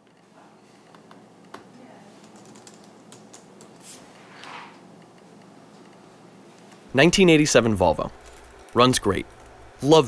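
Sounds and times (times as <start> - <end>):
low room hum: 0.0 - 10.0
laptop keyboard typing: 2.2 - 3.8.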